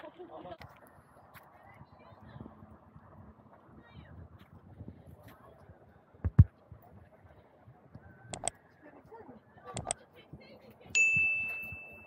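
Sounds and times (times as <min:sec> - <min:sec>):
notification bell ding: 0:11.0 - 0:12.0.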